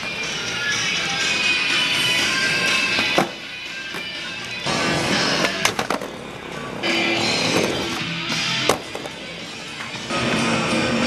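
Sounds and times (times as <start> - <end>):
skateboard wheels rolling on wood: 0.0 - 9.4
music: 0.0 - 11.0
skateboard clacks: 2.8 - 4.1, 5.3 - 6.2, 7.4 - 9.2
skateboard landing thud: 3.0 - 3.4, 8.6 - 9.2.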